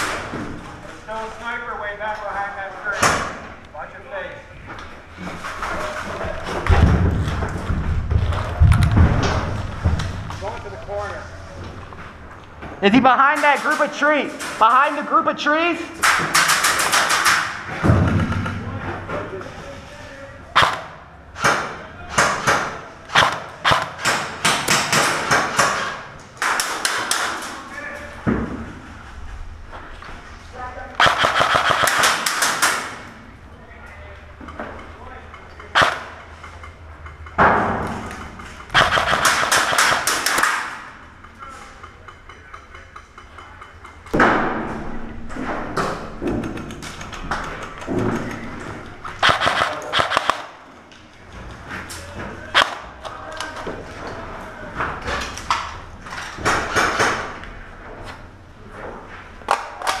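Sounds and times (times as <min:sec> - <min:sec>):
airsoft gun bursts: 0:31.0 - 0:32.9, 0:38.7 - 0:40.7, 0:49.2 - 0:50.6
single sharp gunshots: 0:38.8 - 0:40.4, 0:49.2 - 0:50.5.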